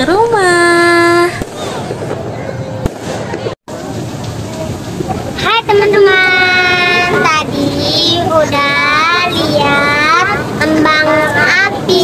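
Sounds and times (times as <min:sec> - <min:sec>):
children singing in unison: 0:06.0 - 0:12.0.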